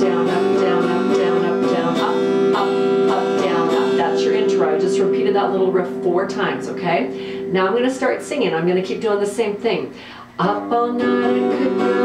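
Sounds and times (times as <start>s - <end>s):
clean electric guitar strumming: 0.0s - 9.6s, 10.4s - 12.0s.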